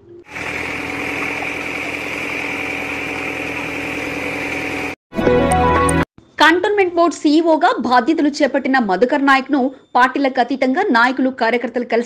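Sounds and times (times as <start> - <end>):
small engine running: 0.3 - 5.0.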